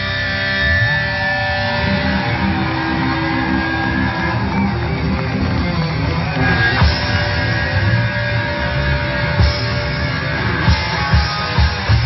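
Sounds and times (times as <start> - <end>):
bass: 0.0 - 12.0
electric guitars: 0.0 - 12.0
fast dense drums: 4.4 - 8.4, 9.3 - 12.0.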